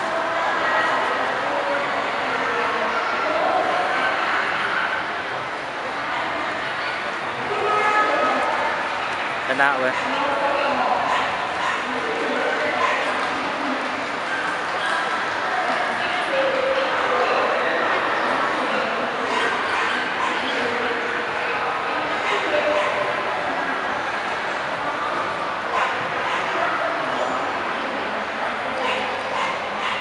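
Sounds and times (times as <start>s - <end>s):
crowd chatter: 0.0s - 30.0s
dog barking: 11.0s - 11.9s, 25.7s - 26.5s, 28.8s - 30.0s.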